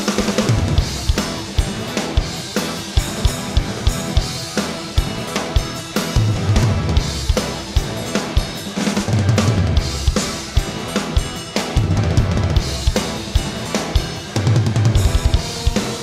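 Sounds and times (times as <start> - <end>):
bass and guitar: 0.0 - 16.0
drum kit playing fast rock groove: 0.0 - 16.0.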